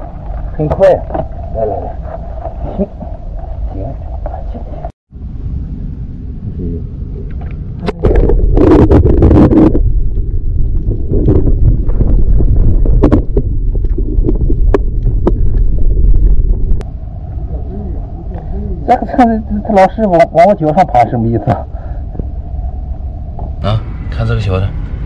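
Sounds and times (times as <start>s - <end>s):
underwater water rumble: 0.0s - 25.0s.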